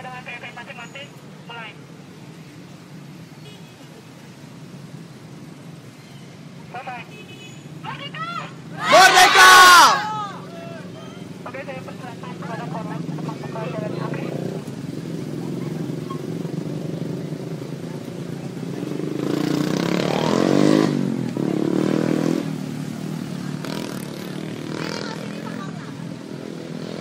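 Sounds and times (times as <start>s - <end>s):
low drone of traffic: 0.0s - 27.0s
motorcycle engine passing: 12.0s - 27.0s.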